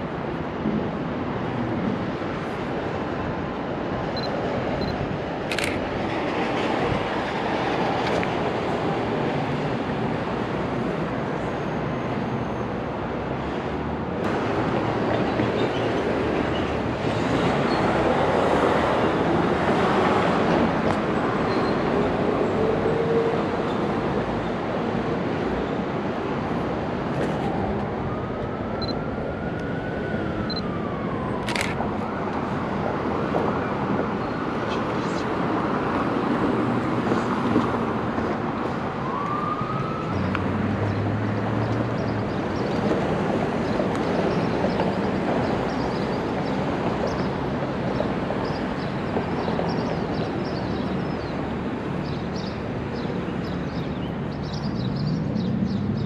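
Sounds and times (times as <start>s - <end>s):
passing traffic: 0.0s - 56.0s.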